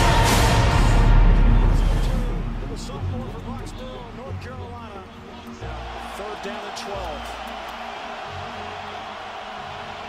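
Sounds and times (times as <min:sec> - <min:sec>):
background music with bass: 0:00.0 - 0:10.0.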